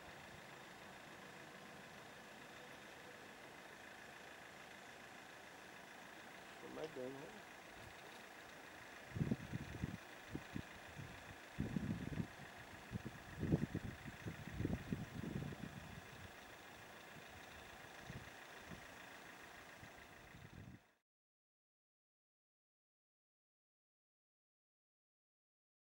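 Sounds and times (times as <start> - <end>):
jet engines idling whine: 0.0 - 21.0
low rumbles: 9.0 - 18.9.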